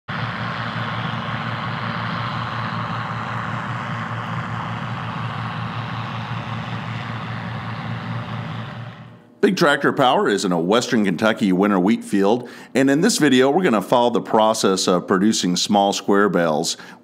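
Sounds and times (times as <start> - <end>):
combine harvester engine hum: 0.0 - 9.2
broad rushing noise: 0.1 - 9.2.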